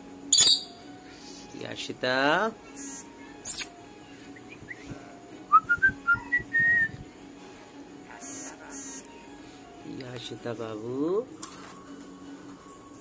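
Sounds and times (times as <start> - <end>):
whistled notes climbing: 0.3 - 0.8.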